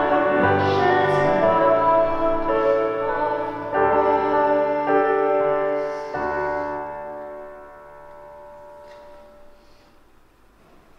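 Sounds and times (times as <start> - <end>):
keyboard chord in church: 0.0 - 10.5.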